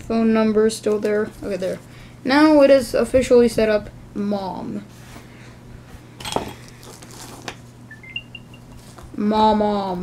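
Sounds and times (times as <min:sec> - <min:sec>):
electronic chime of high beeps: 0:07.9 - 0:08.8.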